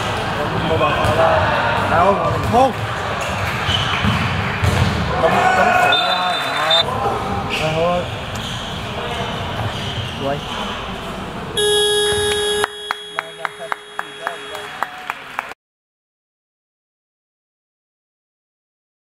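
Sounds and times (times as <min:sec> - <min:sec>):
players shouting: 0:05.1 - 0:07.4
electronic buzzer tone: 0:11.6 - 0:14.8.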